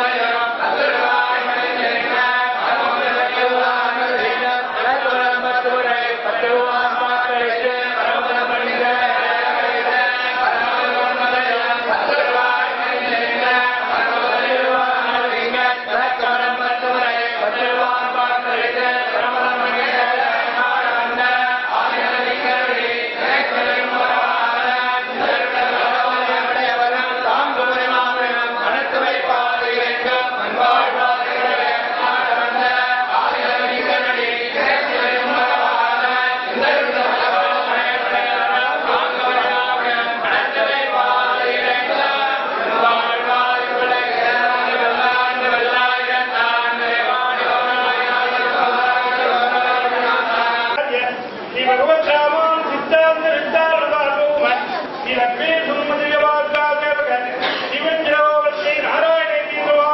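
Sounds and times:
group chanting hymns: 0:00.0 - 0:59.9.

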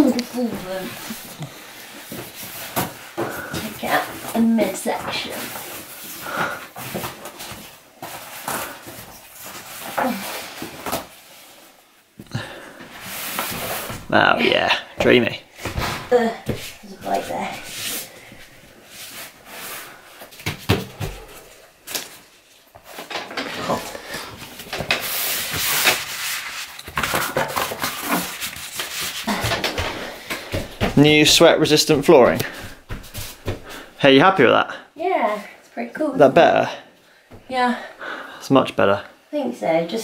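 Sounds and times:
foam tiles scuffing on wooden floor: 0:15.6 - 0:34.0
hand rubbing foam mat: 0:27.9 - 0:34.0.

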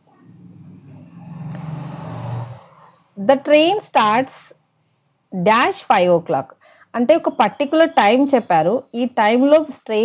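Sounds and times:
vehicle engine hum passing: 0:00.0 - 0:03.4.

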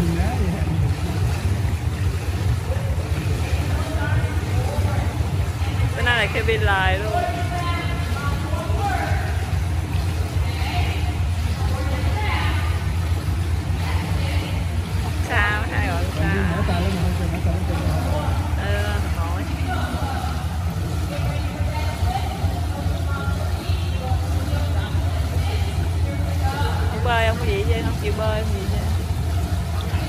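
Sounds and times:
steady low hum: 0:00.0 - 0:30.0
echoing voices: 0:15.2 - 0:28.9.

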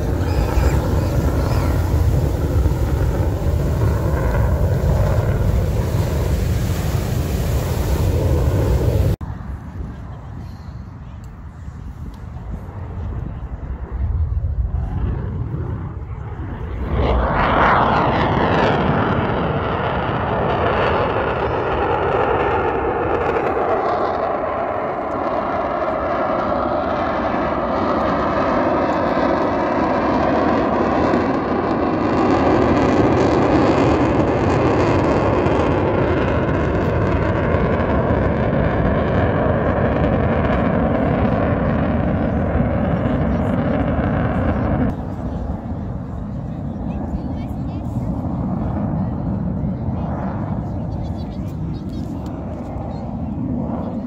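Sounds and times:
fighter jet flying past: 0:00.0 - 0:10.3, 0:11.5 - 0:54.0.

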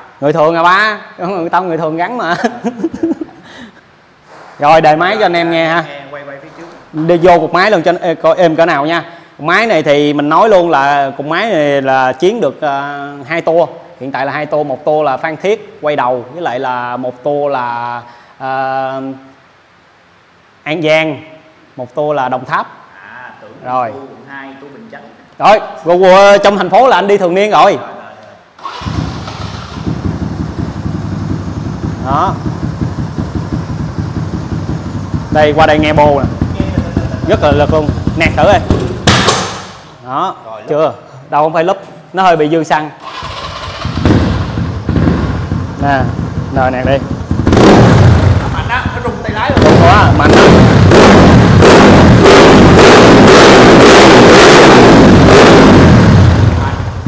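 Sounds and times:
motorcycle engine starting and idling: 0:28.6 - 0:39.8, 0:43.0 - 0:57.0
exhaust pops and bangs: 0:28.9 - 0:39.9, 0:43.9 - 0:56.7.

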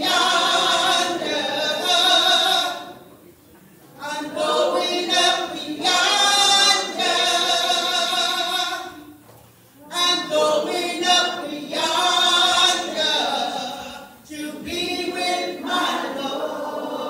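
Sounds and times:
choir singing: 0:00.0 - 0:03.0, 0:04.0 - 0:09.1, 0:09.8 - 0:17.0.

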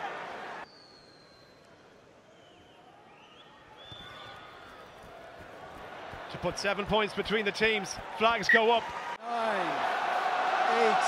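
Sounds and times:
faint whistles: 0:00.6 - 0:04.9.

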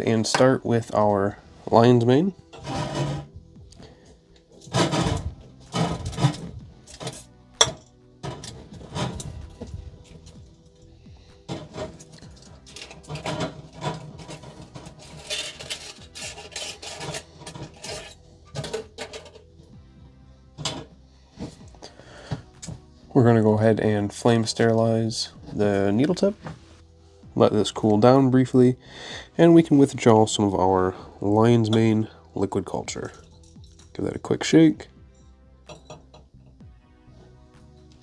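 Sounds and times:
jars and lids knocking: 0:04.7 - 0:09.1, 0:35.7 - 0:36.4
aluminium foil crinkling: 0:12.1 - 0:18.1.

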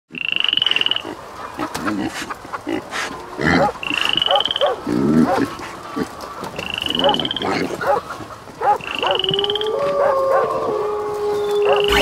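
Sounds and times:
frog-like trilled call: 0:03.8 - 0:04.7, 0:06.6 - 0:07.4, 0:08.8 - 0:09.8, 0:11.6 - 0:12.0.

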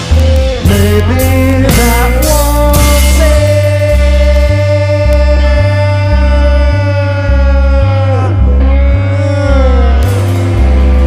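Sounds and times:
alternating bass line: 0:00.0 - 0:11.0
live rock band playing: 0:00.0 - 0:11.0
man singing long high note: 0:00.0 - 0:11.0.

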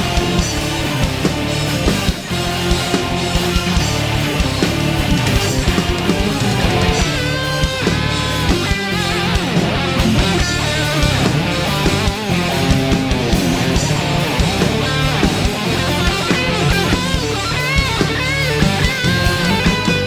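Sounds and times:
distorted electric guitar: 0:00.0 - 0:20.0
rock band playing: 0:00.0 - 0:20.0.

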